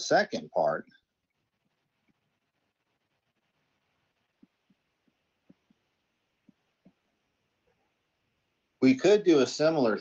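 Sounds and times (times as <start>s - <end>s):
stylus tapping on tablet screen: 3.4s - 7.9s.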